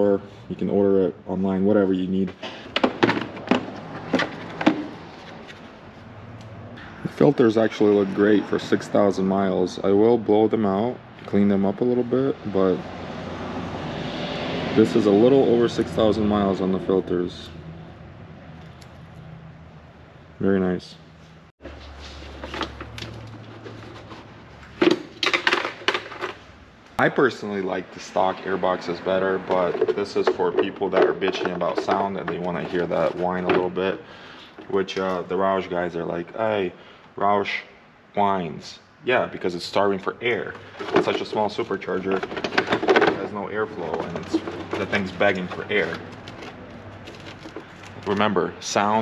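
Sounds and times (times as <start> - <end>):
hard plastic knocks and clacks: 2.4 - 5.0, 29.4 - 33.7, 40.5 - 48.0.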